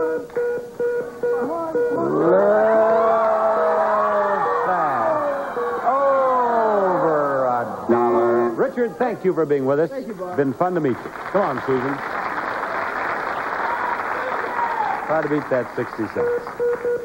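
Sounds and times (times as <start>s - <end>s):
studio audience voices: 10.5s - 16.6s.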